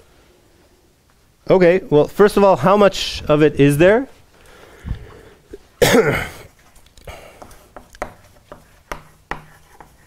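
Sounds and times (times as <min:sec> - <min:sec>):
loud cough: 0:05.8 - 0:06.5.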